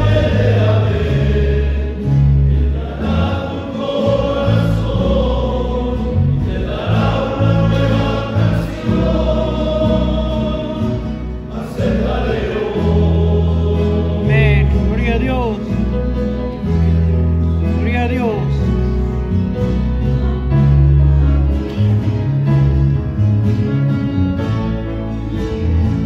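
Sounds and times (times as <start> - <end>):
men's choir singing a hymn: 0.0 - 22.1.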